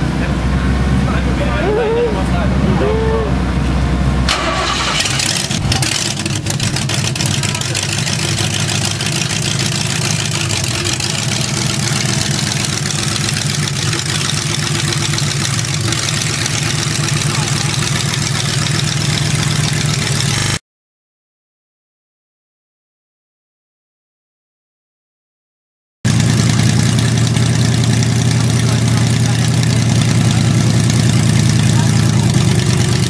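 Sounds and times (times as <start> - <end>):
car engine starting and idling: 0.0 - 20.6, 26.1 - 33.0.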